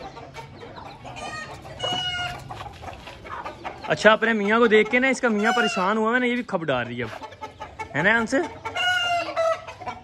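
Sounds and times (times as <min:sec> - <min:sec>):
hen calling loudly: 0:05.2 - 0:06.0.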